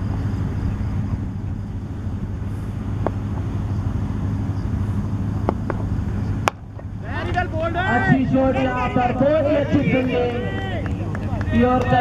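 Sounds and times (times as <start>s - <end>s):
low outdoor hum: 0.0s - 12.0s
cricket bat striking ball: 6.4s - 6.9s.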